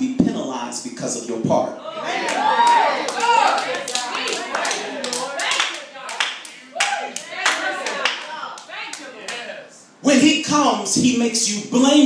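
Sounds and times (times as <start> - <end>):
voices calling out: 1.8 - 10.0
congregation clapping: 2.2 - 9.6.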